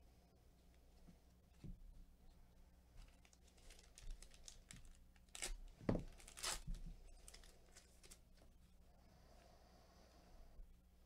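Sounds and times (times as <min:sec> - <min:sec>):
wrapper and cards rustling: 0:03.0 - 0:08.5
card pack wrapper ripping: 0:03.1 - 0:08.2.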